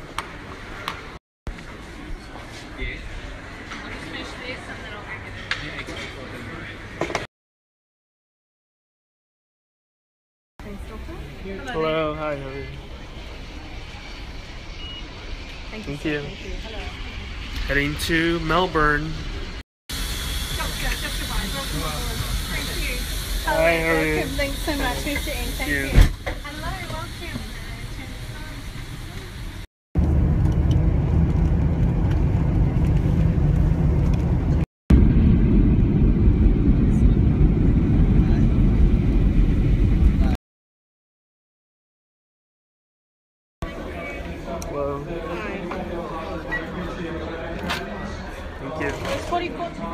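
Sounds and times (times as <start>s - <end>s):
jet engines rumbling in cabin: 12.8s - 40.4s
pass reader high beep: 14.8s - 15.2s.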